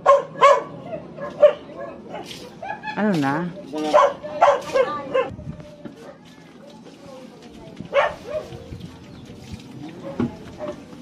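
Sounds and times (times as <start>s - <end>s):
dog barking: 0.0s - 2.4s, 3.9s - 5.3s, 7.9s - 8.6s.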